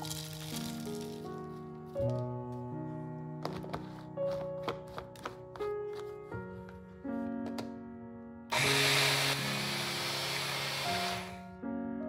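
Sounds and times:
blender grinding oats: 8.5 - 11.4.

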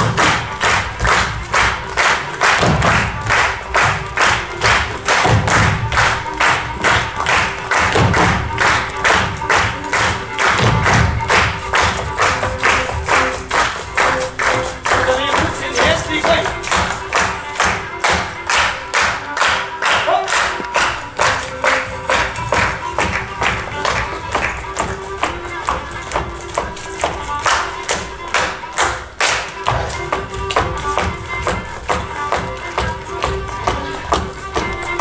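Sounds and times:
feet stamping on stage: 0.0 - 35.0
folk dance melody: 0.0 - 35.0.

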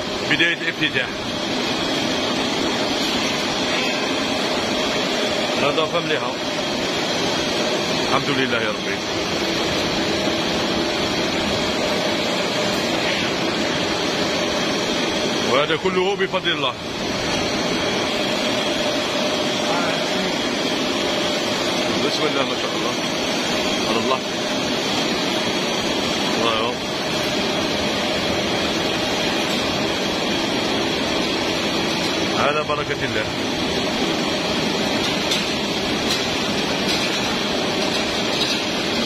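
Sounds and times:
processing machinery whirring: 0.0 - 39.0.

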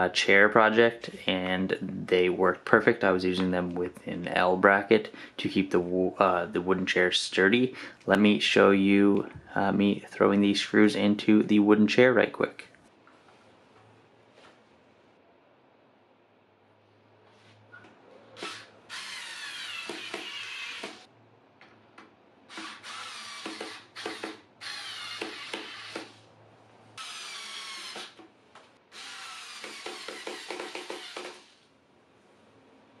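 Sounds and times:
cordless screwdriver driving screws: 18.4 - 21.0, 22.5 - 26.2, 27.0 - 28.2, 28.9 - 31.6.

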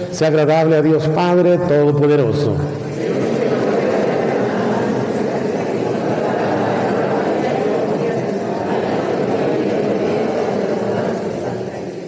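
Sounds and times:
congregation reciting together: 0.0 - 12.0.

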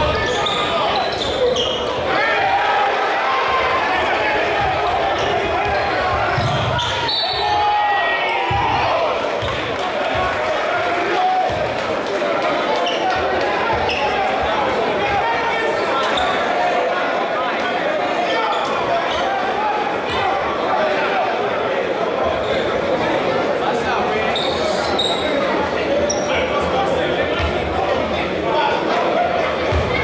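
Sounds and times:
sneakers squeaking: 0.0 - 2.1, 4.6 - 7.6, 12.8 - 14.5, 15.9 - 16.7, 18.2 - 19.5, 24.3 - 26.5, 29.7 - 30.0
echoing crowd chatter: 0.0 - 30.0.

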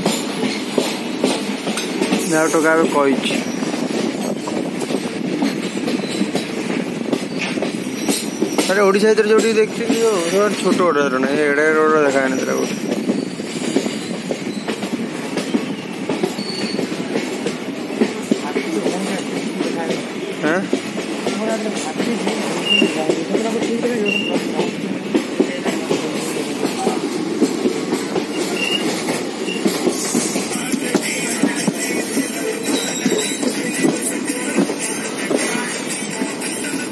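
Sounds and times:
rail joint clicks: 0.0 - 36.9
train wheels rumbling on rails: 0.0 - 36.9.

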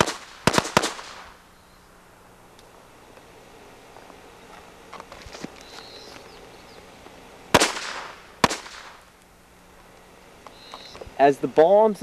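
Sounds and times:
firecrackers popping and crackling: 0.0 - 1.4, 7.5 - 9.3
loud sharp bangs: 0.0 - 1.4, 7.5 - 9.1.

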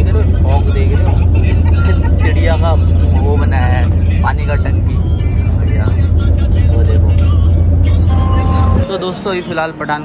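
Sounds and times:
train rumbling: 0.0 - 9.8.

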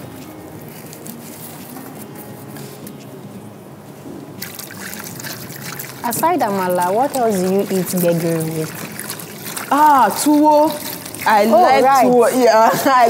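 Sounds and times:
soup bubbling in a pot: 4.4 - 12.0.

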